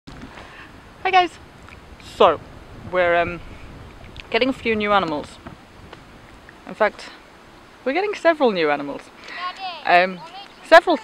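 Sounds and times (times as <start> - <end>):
faint background noise: 0.1 - 11.0
woman speaking: 4.3 - 5.4, 7.9 - 11.0.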